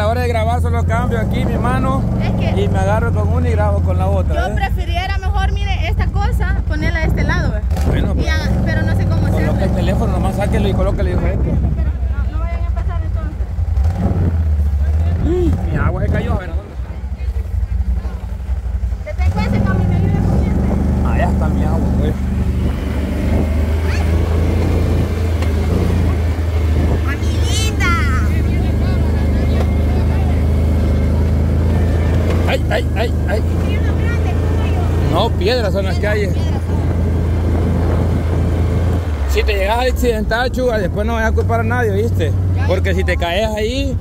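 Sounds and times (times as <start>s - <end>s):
quad bike engine droning: 0.0s - 44.0s.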